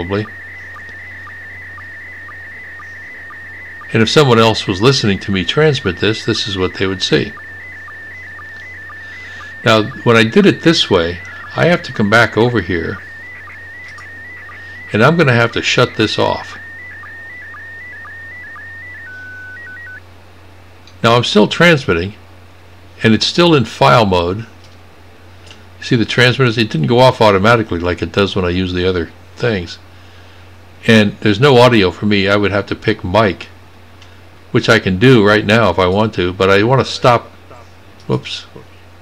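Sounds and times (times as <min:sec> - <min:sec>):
steady high tone with sync blips: 0:00.0 - 0:20.1.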